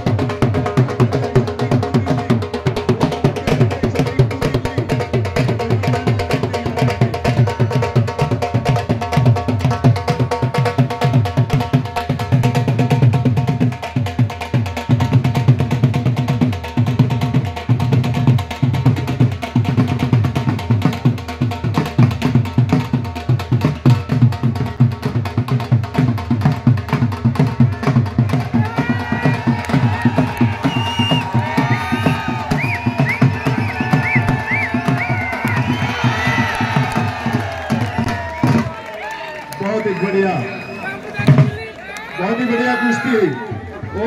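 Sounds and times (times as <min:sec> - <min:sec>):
dhol drums beaten with sticks: 0:00.0 - 0:38.8, 0:41.2 - 0:41.7.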